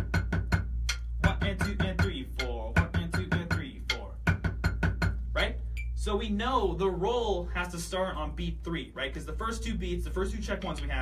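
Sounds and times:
drumsticks striking practice pad: 0:00.0 - 0:05.2.

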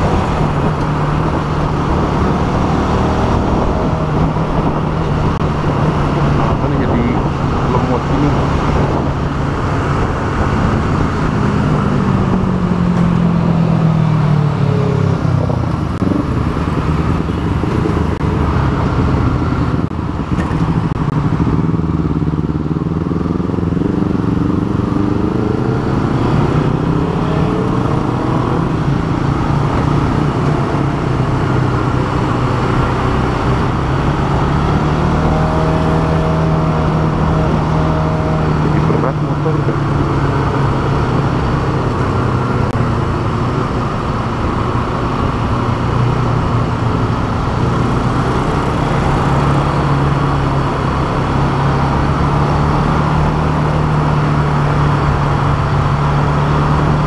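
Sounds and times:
motorcycle engine running: 0:00.0 - 0:57.0
wind and road noise: 0:00.0 - 0:57.0.

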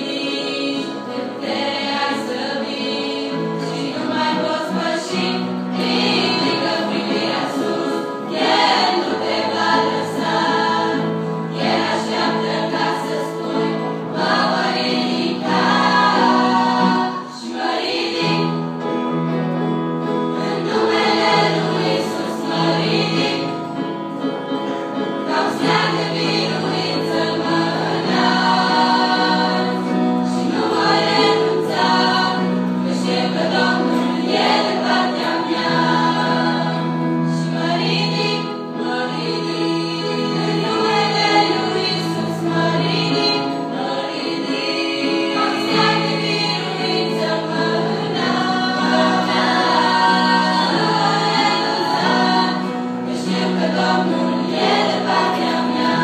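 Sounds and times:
girls' choir singing: 0:00.0 - 0:19.4, 0:20.0 - 0:56.0.

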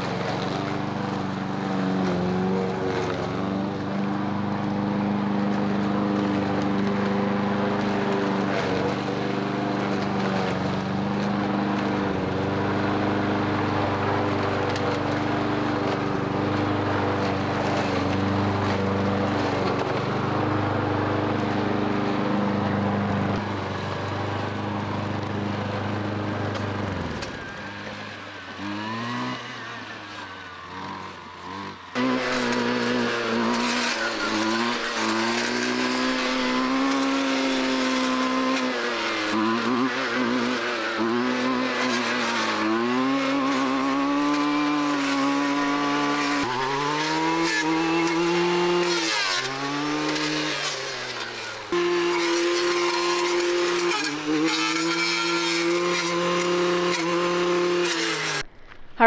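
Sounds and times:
push lawn mower running: 0:00.0 - 0:59.0
string trimmer revving: 0:00.0 - 0:59.0.

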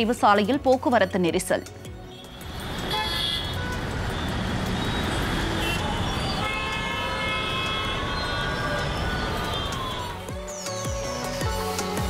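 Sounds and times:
road traffic noise: 0:01.7 - 0:10.3
car horns honking: 0:02.1 - 0:09.0.

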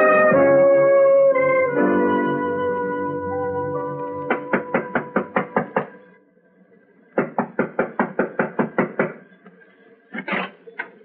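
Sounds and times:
rapid knocking on wood: 0:04.3 - 0:05.9, 0:07.2 - 0:09.2.

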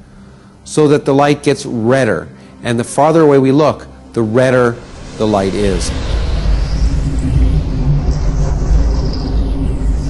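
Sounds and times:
deep steady rumble: 0:04.5 - 0:10.0.

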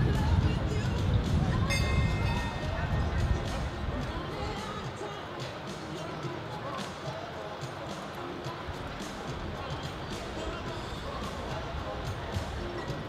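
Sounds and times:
background music: 0:00.0 - 0:13.0
crowd voices: 0:00.0 - 0:13.0.

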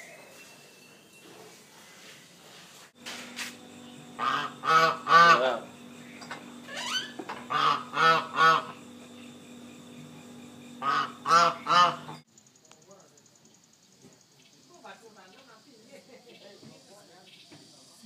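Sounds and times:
steady low hum: 0:01.8 - 0:13.3
goose honking: 0:04.2 - 0:05.6, 0:07.5 - 0:08.8, 0:10.8 - 0:12.2.

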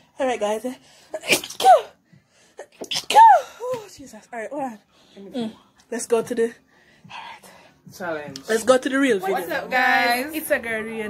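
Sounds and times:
woman sneezing: 0:01.2 - 0:02.0, 0:02.6 - 0:03.8.

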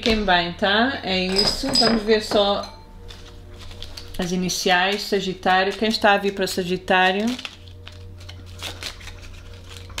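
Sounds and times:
low steady hum: 0:00.0 - 0:10.0
cards being shuffled: 0:03.1 - 0:04.3, 0:04.9 - 0:10.0.

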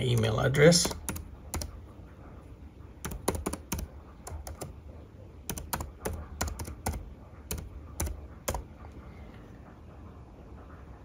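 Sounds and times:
typing on computer keyboard: 0:00.0 - 0:01.8, 0:03.0 - 0:04.8, 0:05.4 - 0:08.7.

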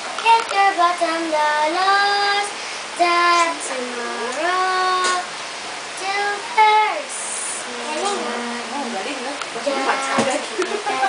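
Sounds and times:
girl singing solo: 0:06.0 - 0:08.7, 0:09.6 - 0:11.0.

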